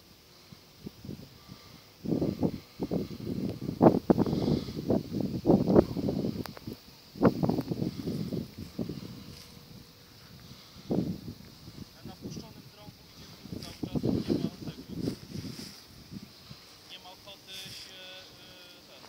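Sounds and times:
rumbling and rustling on microphone: 0:00.0 - 0:19.0.

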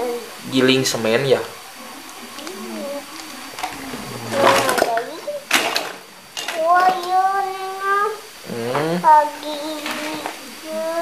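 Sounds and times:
child talking softly: 0:02.4 - 0:03.1, 0:03.9 - 0:05.6, 0:06.6 - 0:11.0
child singing long tone: 0:06.6 - 0:11.0.

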